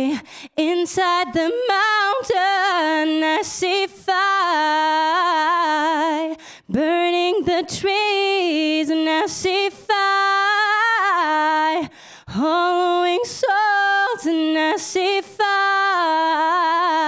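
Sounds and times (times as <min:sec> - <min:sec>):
singer breathing: 0:00.1 - 0:00.6, 0:06.3 - 0:06.7, 0:11.8 - 0:12.3.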